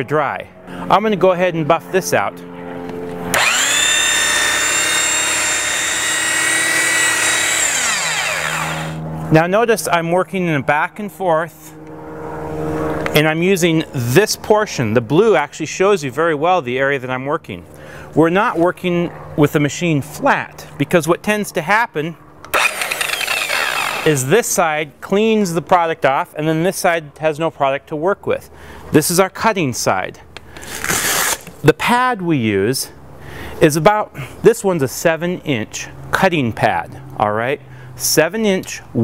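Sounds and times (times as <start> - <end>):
rotary buffer motor whine: 3.3 - 9.2, 22.5 - 24.2.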